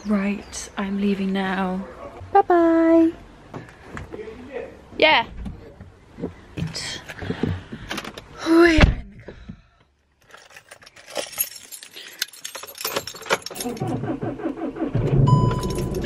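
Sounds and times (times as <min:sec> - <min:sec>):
car keys jangling: 0:10.2 - 0:14.1, 0:15.3 - 0:16.0
car engine starting and idling: 0:13.0 - 0:16.0.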